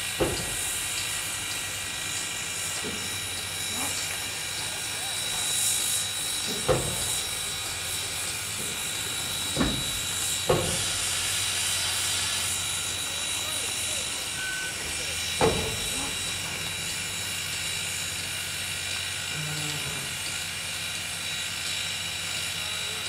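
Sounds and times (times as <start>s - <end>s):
steam hissing: 0.0s - 23.0s.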